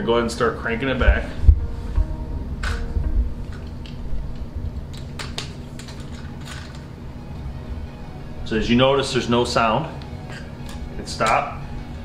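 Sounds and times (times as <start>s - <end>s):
steady low background tone: 0.0s - 12.0s.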